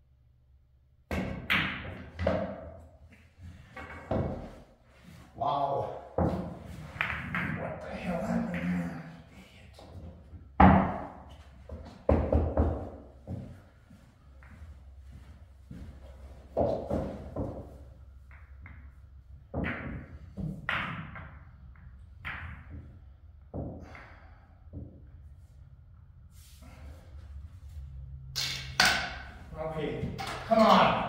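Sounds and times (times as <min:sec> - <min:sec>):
pool balls clacking: 0:06.2 - 0:08.9, 0:16.6 - 0:22.9, 0:28.4 - 0:29.4, 0:30.0 - 0:31.0.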